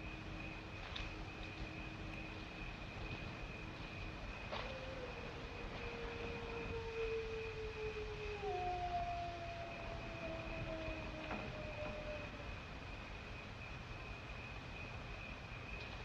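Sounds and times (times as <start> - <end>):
high whine and hiss: 0.0 - 16.0.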